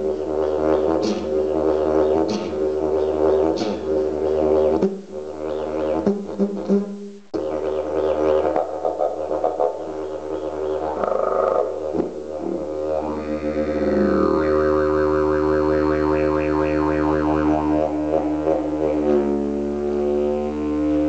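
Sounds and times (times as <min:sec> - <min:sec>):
didgeridoo drone: 0:00.0 - 0:21.0.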